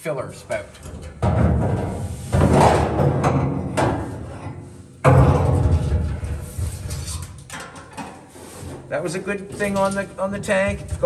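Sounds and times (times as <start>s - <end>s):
metal fuel tank booming knocks: 0.8s - 4.2s, 5.0s - 7.0s
metal tank shifted on metal floor: 0.8s - 8.9s.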